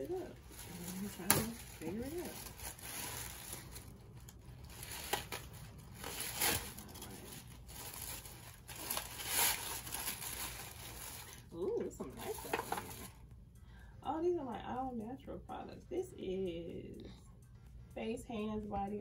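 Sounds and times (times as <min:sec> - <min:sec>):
cellophane crinkling and tearing: 0:00.0 - 0:13.2.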